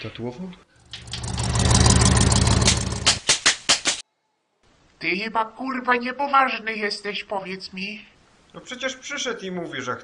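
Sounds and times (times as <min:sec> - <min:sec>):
motor buzzing: 0:00.8 - 0:03.2.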